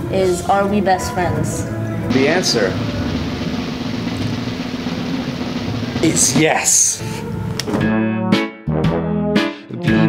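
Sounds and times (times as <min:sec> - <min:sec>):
drum roll: 0:01.4 - 0:07.4.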